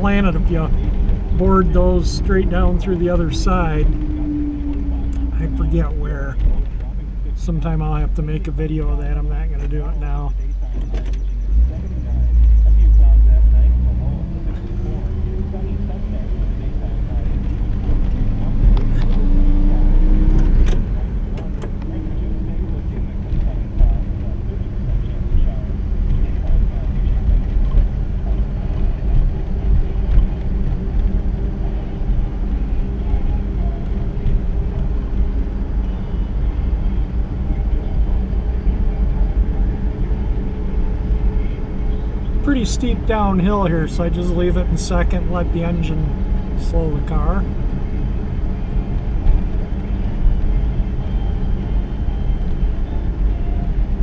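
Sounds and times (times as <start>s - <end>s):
car engine rumbling while driving: 0.0s - 54.0s.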